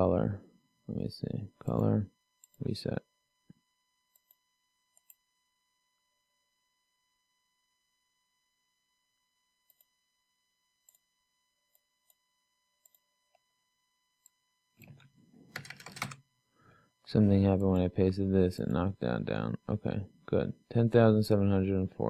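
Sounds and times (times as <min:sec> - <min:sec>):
keyboard clicks: 0:14.8 - 0:16.2.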